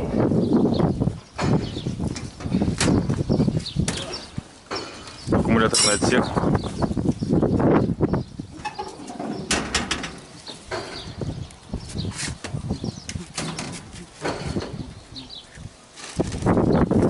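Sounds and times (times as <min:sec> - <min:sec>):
knocks and clatter on metal parts: 0:04.7 - 0:06.2, 0:08.7 - 0:11.1.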